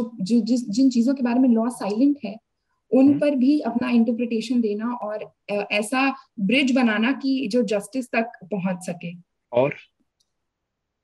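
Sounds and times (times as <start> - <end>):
person speaking: 2.9 - 5.3, 9.5 - 10.0.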